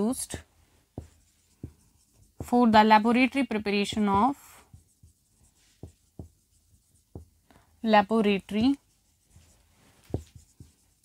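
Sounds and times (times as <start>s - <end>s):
marker scratching on whiteboard: 0.0s - 7.5s, 8.1s - 11.0s
marker taps: 0.9s - 2.9s, 3.5s - 7.4s, 10.1s - 11.0s.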